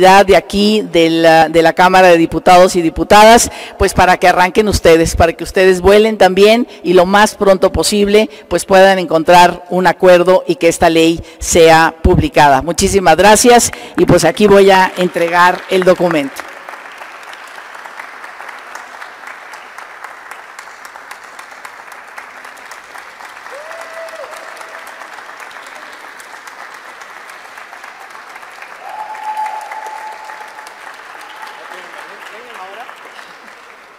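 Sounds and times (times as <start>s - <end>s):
audience applauding: 14.7s - 33.9s.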